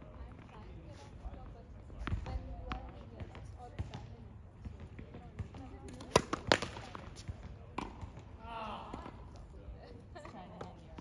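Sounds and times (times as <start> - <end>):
tennis ball bouncing on court: 2.0 - 9.5, 10.2 - 11.0.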